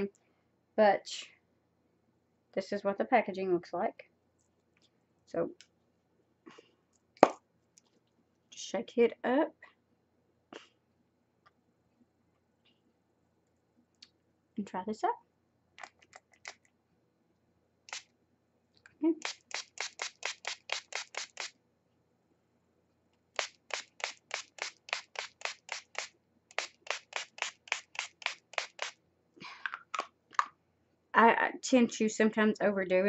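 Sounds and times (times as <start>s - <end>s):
spray mister spraying: 19.2s - 21.5s, 23.4s - 29.0s.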